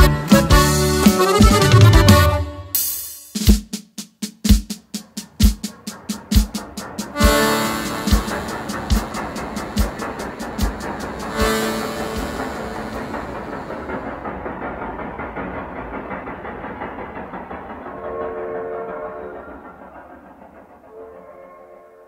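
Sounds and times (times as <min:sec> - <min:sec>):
train horn: 0:00.0 - 0:02.8, 0:07.2 - 0:13.6, 0:18.0 - 0:19.4, 0:20.9 - 0:22.0
train wheels rumbling: 0:00.0 - 0:03.0, 0:03.8 - 0:22.0
drum hits: 0:00.0 - 0:16.9.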